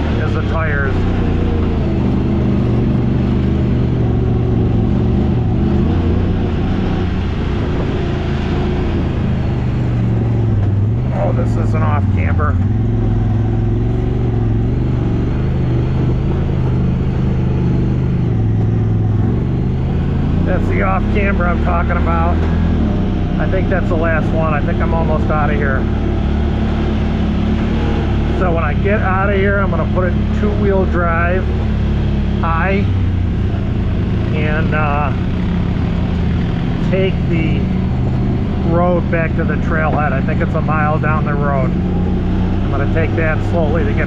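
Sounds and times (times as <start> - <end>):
engine droning at low revs: 0.0 - 44.0.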